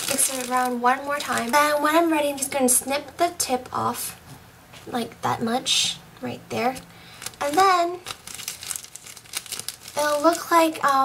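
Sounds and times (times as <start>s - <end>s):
plastic bag crinkling: 0.0s - 2.0s, 7.1s - 11.0s.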